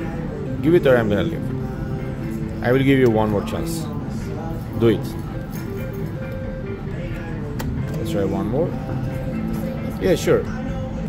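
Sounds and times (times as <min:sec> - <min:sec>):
background machine music: 0:00.0 - 0:11.0
background voices: 0:00.0 - 0:11.0.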